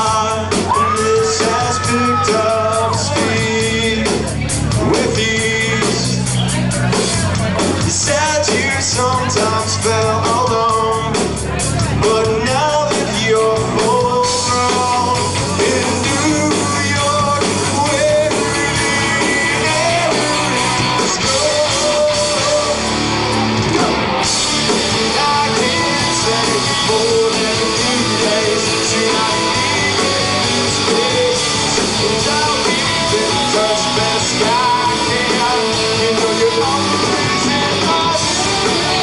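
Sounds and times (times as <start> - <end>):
rock band playing live: 0.0 - 39.0.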